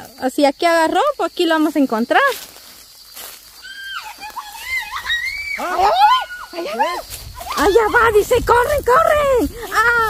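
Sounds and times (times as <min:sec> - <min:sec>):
rustle of dry brush: 0:01.7 - 0:05.5, 0:06.7 - 0:10.0.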